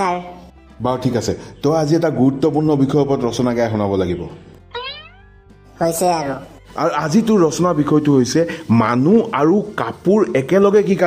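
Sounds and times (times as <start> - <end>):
cartoon music: 4.7 - 6.2
cartoon vocal sounds: 4.8 - 5.2.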